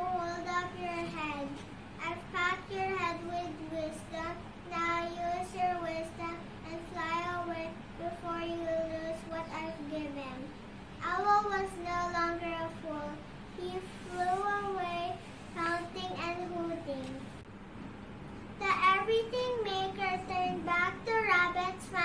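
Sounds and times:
girl singing: 0.0 - 17.4, 18.6 - 22.0.

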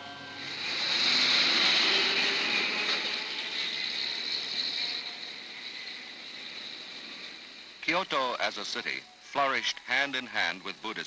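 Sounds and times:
street traffic rush: 0.0 - 9.0.

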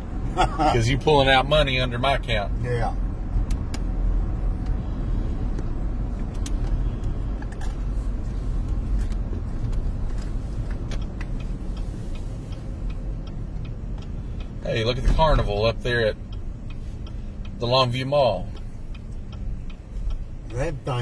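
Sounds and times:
road and engine noise in cabin: 0.0 - 21.0.

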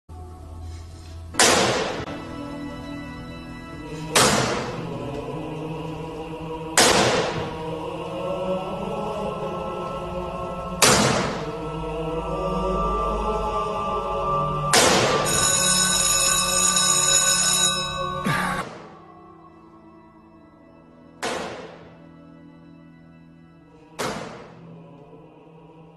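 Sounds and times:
faint low music drone: 0.1 - 25.9
electric bell ringing: 15.2 - 18.3.

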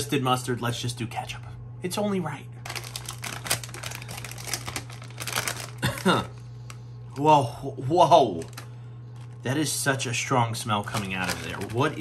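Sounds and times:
plastic chip bag crinkling: 2.6 - 7.3, 8.2 - 9.6, 10.8 - 12.0.

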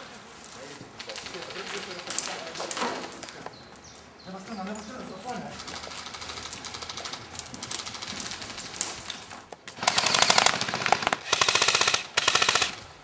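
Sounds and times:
airsoft rifles firing full auto: 1.0 - 2.4, 5.6 - 9.0, 9.8 - 12.9.

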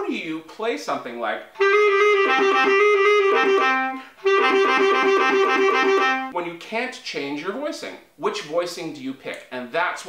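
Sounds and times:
bass clarinet playing fast notes: 1.6 - 6.3.

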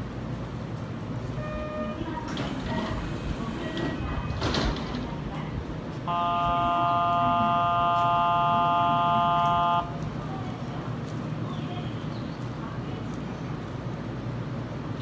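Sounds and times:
electronic chord departure signal: 6.1 - 9.9.

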